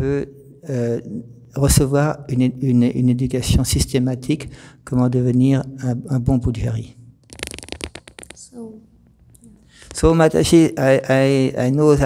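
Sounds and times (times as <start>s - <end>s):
microphone handling clicks and rustles: 7.2s - 10.3s.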